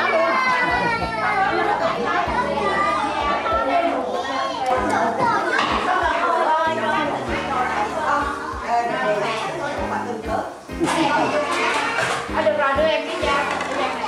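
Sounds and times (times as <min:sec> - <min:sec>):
children talking and calling out: 0:00.0 - 0:14.0.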